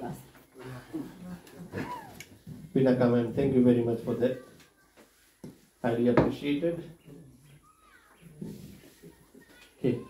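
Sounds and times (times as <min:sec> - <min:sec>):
faint murmuring voices: 0:00.0 - 0:10.0.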